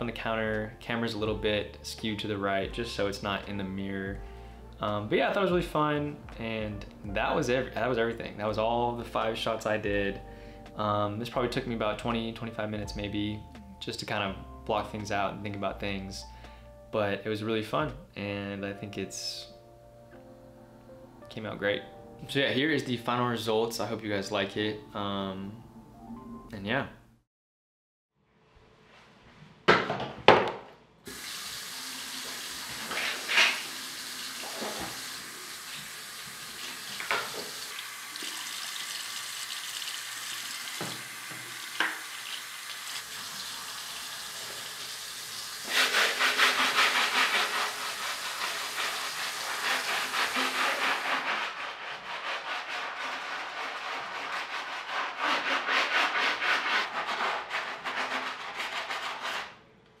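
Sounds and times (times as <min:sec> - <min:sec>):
tap water running into sink: 0:31.1 - 0:45.8, 0:47.2 - 0:50.6
brush scrubbing a sneaker: 0:45.6 - 0:59.4.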